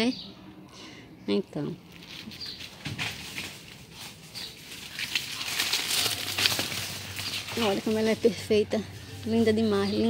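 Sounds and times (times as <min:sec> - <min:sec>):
leaves rustling and crackling: 0:01.8 - 0:10.0.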